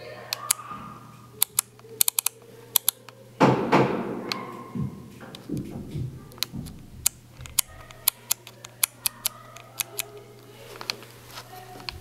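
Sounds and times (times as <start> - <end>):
steady low hum: 0.0 - 12.0
sharp irregular clicks: 0.3 - 0.6, 1.4 - 3.1, 6.3 - 10.2.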